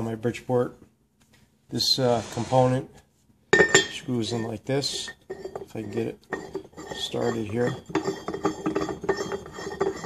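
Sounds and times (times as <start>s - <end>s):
metal threads clicking and scraping: 4.4s - 10.0s.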